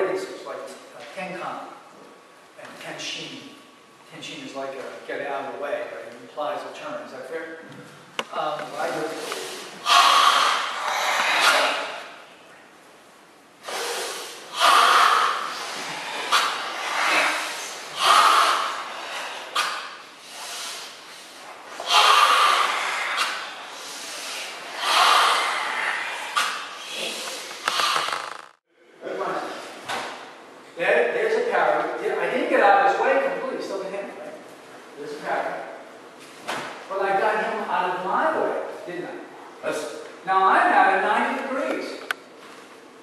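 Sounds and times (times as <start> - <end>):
forceful hissing breathing: 9.0 - 12.2, 13.6 - 28.5.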